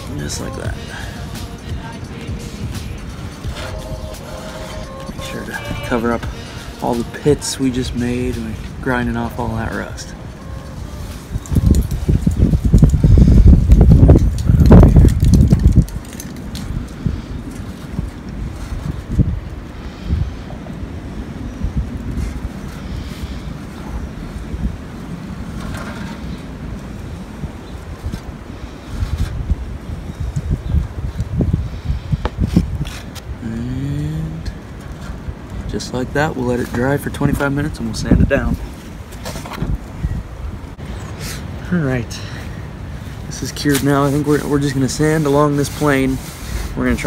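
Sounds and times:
outdoor background noise: 0.0s - 47.0s
wind buffeting microphone: 0.0s - 47.0s.

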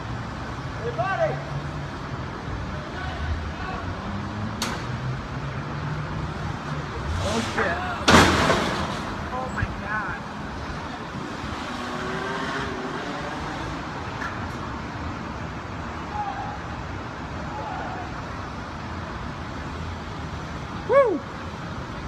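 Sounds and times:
voices: 6.3s - 11.6s, 16.0s - 18.4s
loud sudden bang: 8.0s - 9.2s.

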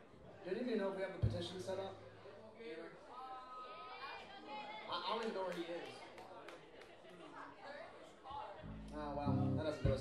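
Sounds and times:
people talking faintly: 0.0s - 10.0s.

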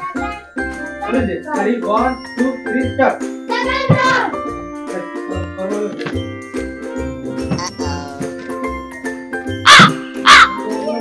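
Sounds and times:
crow cawing: 9.7s - 10.6s.

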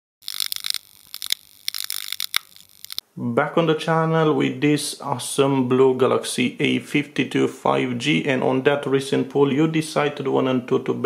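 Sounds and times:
electrical crackling and sputtering: 0.2s - 3.0s.

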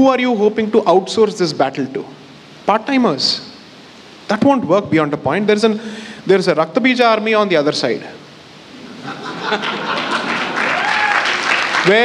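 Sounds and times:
audience applause: 9.5s - 12.0s.

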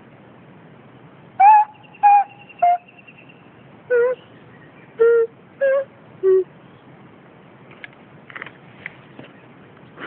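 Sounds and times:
nose flute notes: 1.4s - 2.9s, 3.9s - 4.2s, 5.0s - 6.5s.

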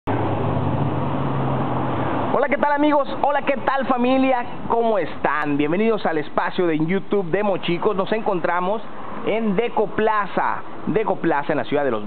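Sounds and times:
vehicle engine humming: 0.0s - 10.9s.

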